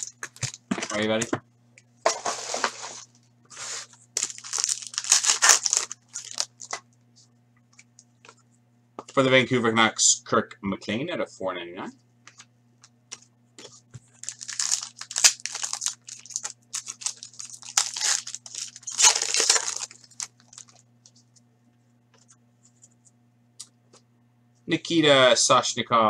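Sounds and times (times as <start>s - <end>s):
foil wrapper tearing and crinkling: 0.0s - 0.6s, 4.2s - 6.8s, 14.2s - 20.8s.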